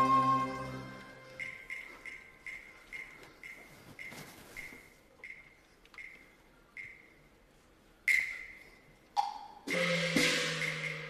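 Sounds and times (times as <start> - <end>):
opera instrumental ensemble: 0.0 - 2.1
lower-pitched percussion strike: 9.7 - 11.0
ringing percussion strike: 9.7 - 11.0.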